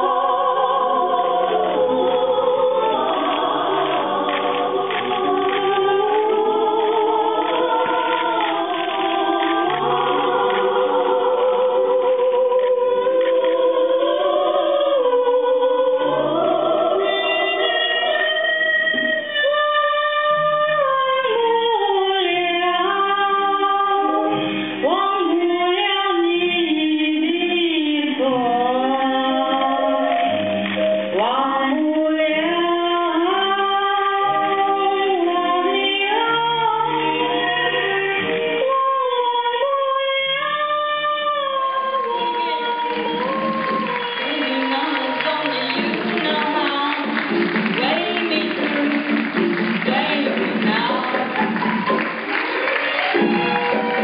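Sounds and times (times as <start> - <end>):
choir singing sustained notes: 0.0 - 19.1
soprano singing: 0.0 - 52.4.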